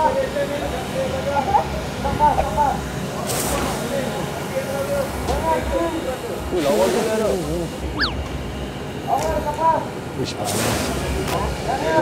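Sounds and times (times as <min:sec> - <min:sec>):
voices calling: 0:06.4 - 0:10.4.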